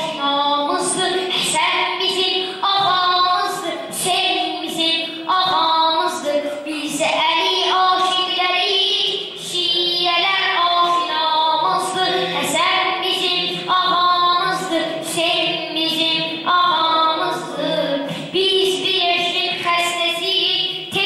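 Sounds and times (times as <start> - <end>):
boy chanting melodically: 0.0 - 21.0.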